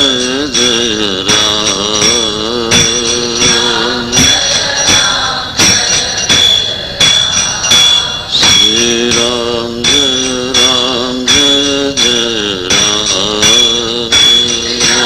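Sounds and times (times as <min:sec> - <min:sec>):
hand cymbals struck in a beat: 0:00.0 - 0:15.0
person singing: 0:00.0 - 0:15.0.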